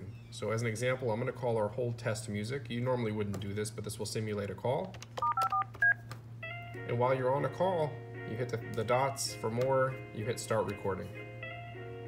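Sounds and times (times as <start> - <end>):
phone keypad touch-tones: 5.2 - 6.0.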